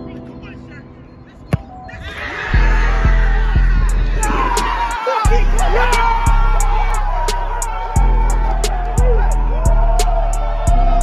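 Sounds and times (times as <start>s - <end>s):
people shouting and cheering: 1.9s - 11.0s
music with heavy bass beat: 2.6s - 11.0s.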